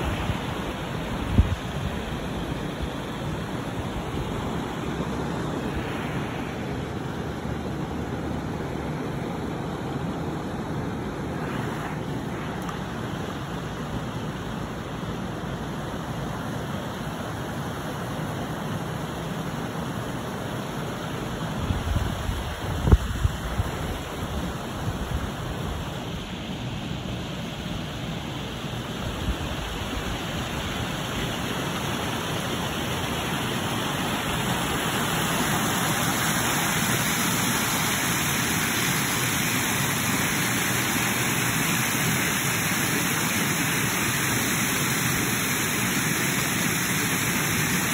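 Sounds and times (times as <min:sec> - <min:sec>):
water rushing over stone spillway: 0:00.0 - 0:47.9.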